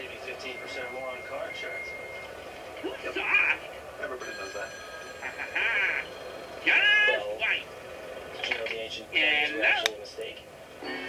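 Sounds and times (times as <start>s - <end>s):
telephone ringing trill: 4.0s - 7.4s.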